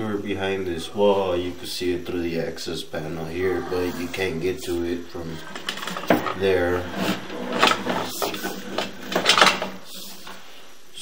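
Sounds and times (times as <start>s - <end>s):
cable scraping and knocking in pipe: 3.7s - 10.4s.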